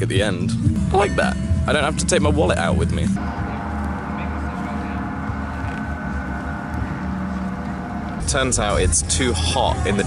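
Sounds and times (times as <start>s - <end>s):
deep hum: 3.0s - 9.9s
gongs ringing drone: 3.2s - 10.0s.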